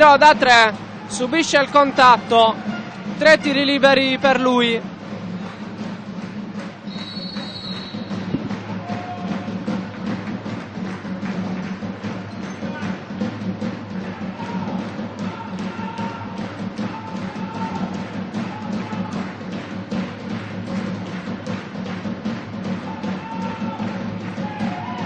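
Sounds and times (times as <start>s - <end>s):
crowd noise in sports hall: 0.0s - 25.0s
steady drumbeat: 0.0s - 25.0s.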